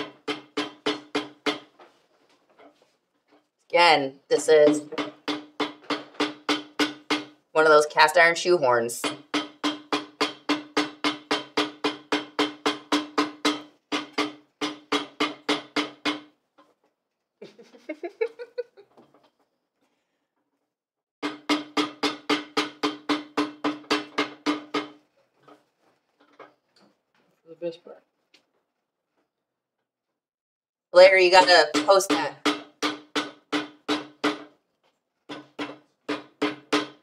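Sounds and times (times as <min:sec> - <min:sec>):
hammer pounding leather on iron: 0:00.0 - 0:01.8, 0:04.8 - 0:07.4, 0:09.0 - 0:16.4, 0:21.2 - 0:25.1, 0:31.4 - 0:34.6, 0:35.2 - 0:37.0.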